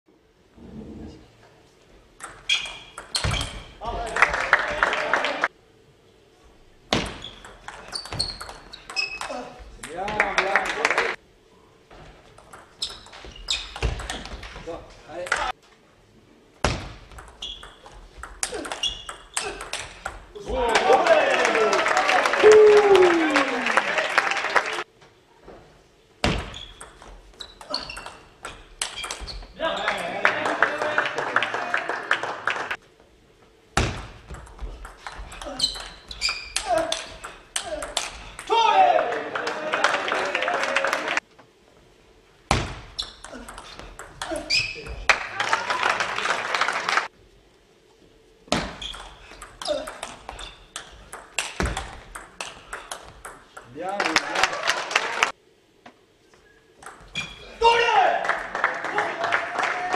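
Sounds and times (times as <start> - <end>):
crowd applauding and shouting: 4.1 - 5.5, 20.6 - 24.9, 29.9 - 32.8, 38.5 - 41.2, 45.1 - 47.1, 54.0 - 55.3, 57.8 - 59.9
voices in a hall: 36.6 - 41.2.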